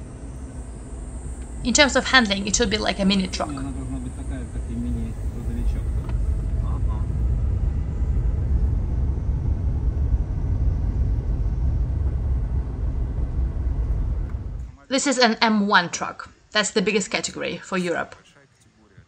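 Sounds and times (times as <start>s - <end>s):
road and tyre noise in car: 0.0s - 14.8s.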